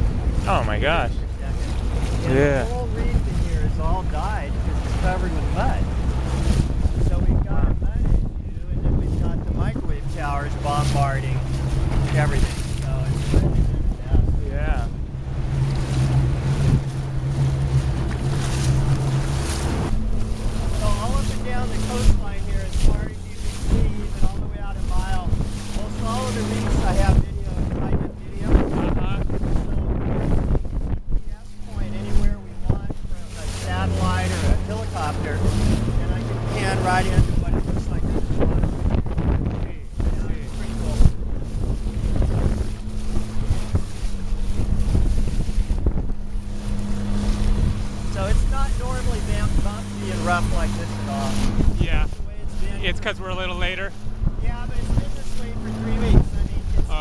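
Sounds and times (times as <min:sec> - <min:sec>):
hull thumping on waves: 0:00.0 - 0:57.0
outboard motor running: 0:00.0 - 0:57.0
water rushing past: 0:00.0 - 0:57.0
wind buffeting microphone: 0:00.0 - 0:57.0.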